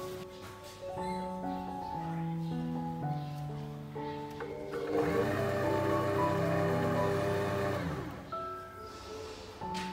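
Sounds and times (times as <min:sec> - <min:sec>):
stand mixer motor running: 0:04.5 - 0:08.3.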